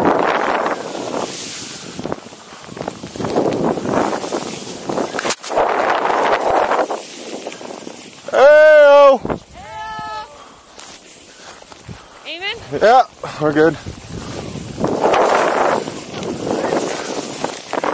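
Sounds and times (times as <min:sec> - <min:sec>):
wind on microphone: 0:00.0 - 0:10.4, 0:13.5 - 0:17.9
snow hissing under skis: 0:00.0 - 0:17.9
person whooping: 0:08.3 - 0:10.5.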